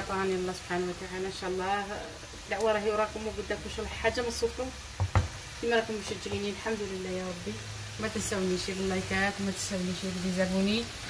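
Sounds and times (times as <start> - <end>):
boiling water bubbling: 1.1 - 10.8
spoon knocking against pot: 5.0 - 5.4.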